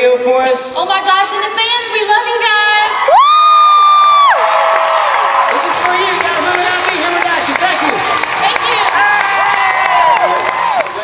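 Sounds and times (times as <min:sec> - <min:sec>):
crowd cheering: 0:02.8 - 0:11.0.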